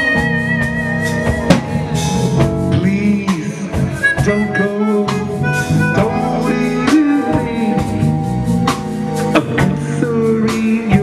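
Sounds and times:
jazz band playing: 0:00.0 - 0:11.0.

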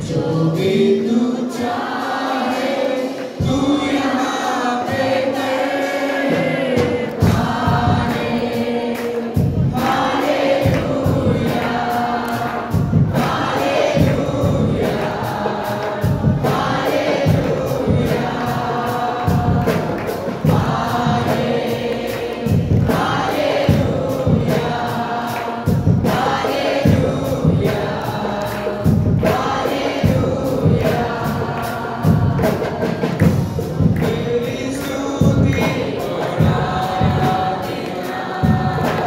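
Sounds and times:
congregation singing a worship song: 0:00.0 - 0:39.0
steady percussion beat: 0:00.0 - 0:39.0.

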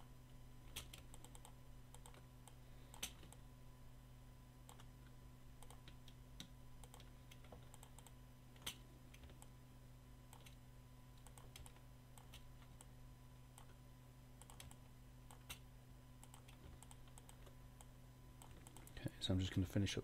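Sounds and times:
electrical hum: 0:00.0 - 0:20.0.

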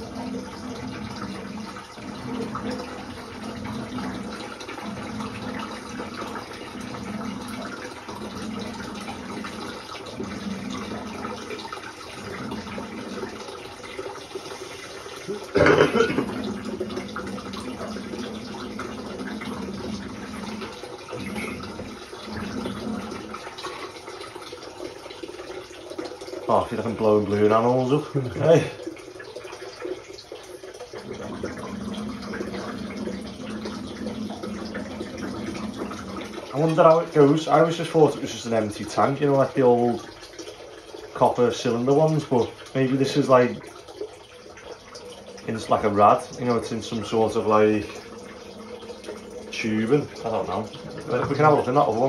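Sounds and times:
water draining through pipes: 0:00.0 - 0:52.0.

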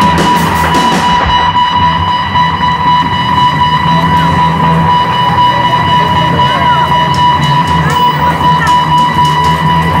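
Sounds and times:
high ringing tone: 0:00.0 - 0:10.0
rock music with electric guitar: 0:00.0 - 0:10.0.

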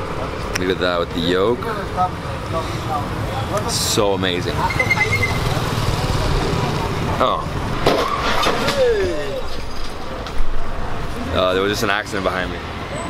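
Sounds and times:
street traffic: 0:00.0 - 0:13.0
vehicle collision crash: 0:07.8 - 0:10.7.

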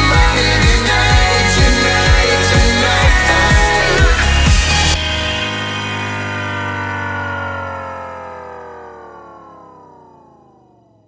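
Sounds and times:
synthesizer chord sliding down: 0:00.0 - 0:11.0.

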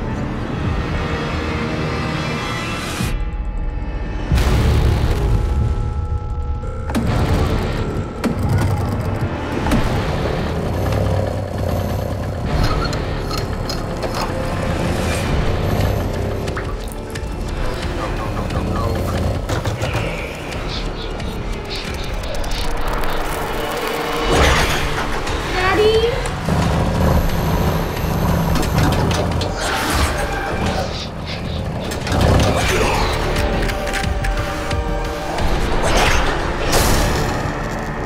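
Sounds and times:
dark horror film score: 0:00.0 - 0:38.0.

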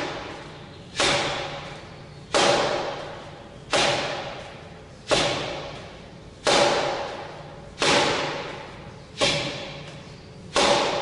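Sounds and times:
forearm strikes on striking post: 0:00.0 - 0:11.0.

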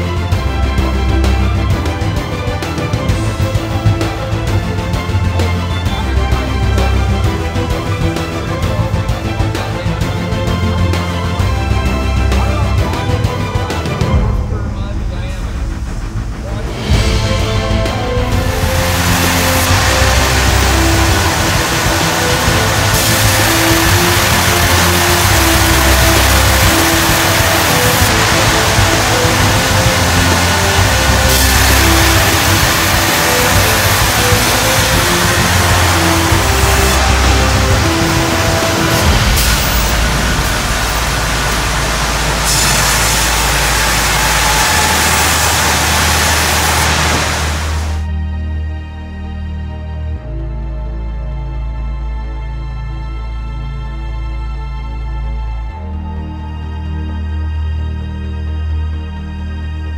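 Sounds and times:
background music with bass line: 0:00.0 - 0:59.9
sawmill machinery noise: 0:16.9 - 0:48.0.

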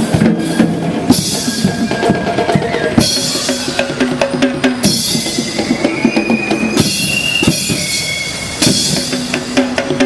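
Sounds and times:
band drums playing: 0:00.0 - 0:10.0.

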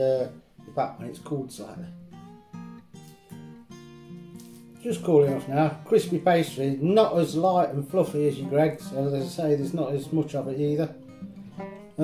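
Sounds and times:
man speaking: 0:00.0 - 0:01.9, 0:04.8 - 0:11.0
acoustic guitar chords: 0:00.0 - 0:12.0.

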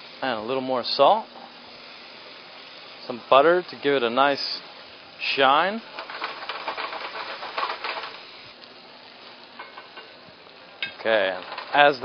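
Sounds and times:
fish sizzling in a pan: 0:00.0 - 0:12.0.

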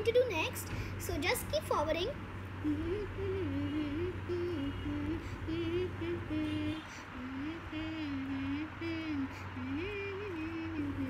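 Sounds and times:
steady low hum: 0:00.0 - 0:11.0
girl humming a tune: 0:02.6 - 0:11.0.

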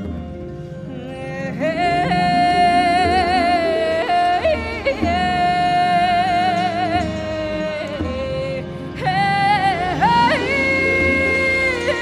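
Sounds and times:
two-string fiddle: 0:00.0 - 0:12.0
woman singing with vibrato: 0:00.9 - 0:12.0.

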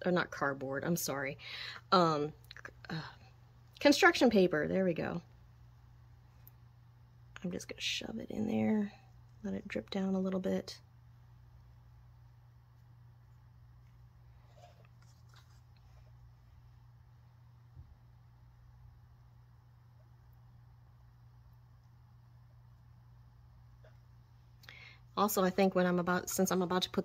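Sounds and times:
low hum: 0:04.5 - 0:27.0.

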